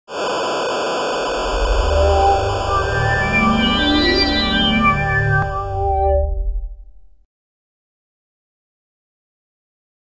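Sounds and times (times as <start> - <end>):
tv static hiss: 0.1 - 5.6
low bass note: 1.3 - 7.2.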